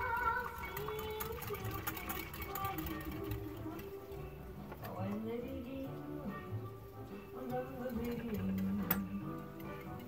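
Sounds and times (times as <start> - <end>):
whisk clicking against glass: 0.0 - 4.0, 7.4 - 10.0.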